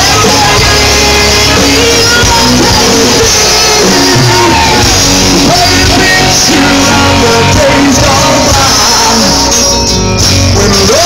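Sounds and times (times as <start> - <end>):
person singing: 0.0 - 11.0
rock band playing a ballad: 0.0 - 11.0.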